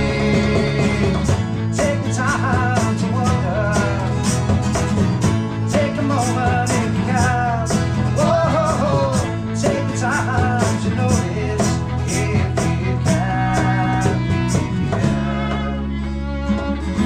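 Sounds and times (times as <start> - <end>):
bowed fiddle melody: 0.0 - 17.0
electric bass guitar: 0.0 - 17.0
strummed acoustic guitars: 0.0 - 17.0.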